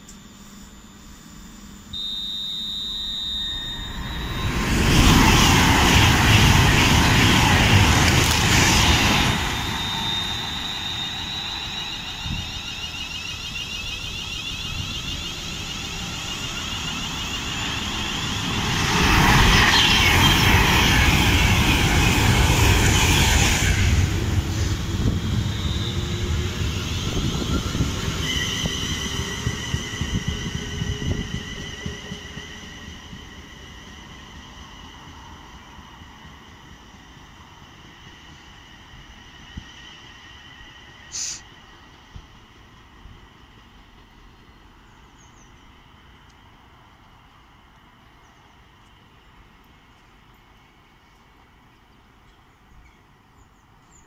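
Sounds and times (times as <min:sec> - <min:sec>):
high steady train whine: 0:00.0 - 0:54.0
high squealing tones of train: 0:01.9 - 0:54.0
trains rushing past: 0:03.3 - 0:52.2.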